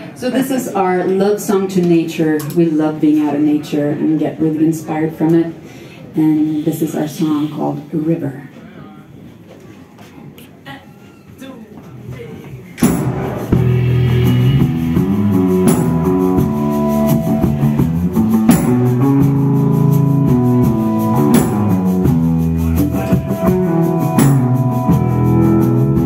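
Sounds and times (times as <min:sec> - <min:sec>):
drums: 0:11.8 - 0:26.0
electric guitar: 0:12.8 - 0:26.0
tambourine: 0:15.6 - 0:17.4, 0:18.5 - 0:19.0, 0:24.1 - 0:24.8.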